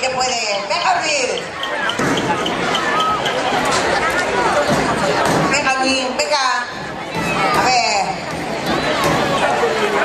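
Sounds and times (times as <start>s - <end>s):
crowd calling and shouting: 0.0s - 10.0s.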